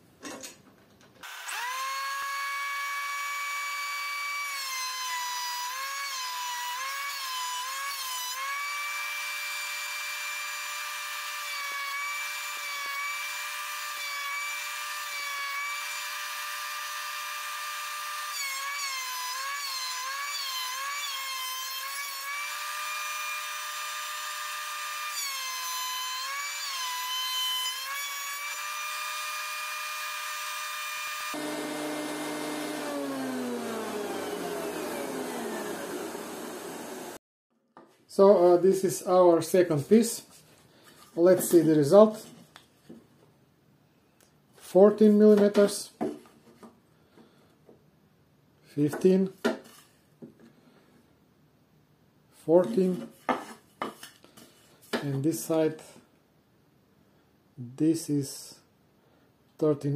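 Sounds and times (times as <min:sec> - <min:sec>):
planer motor high whine: 0:31.3 - 0:37.2.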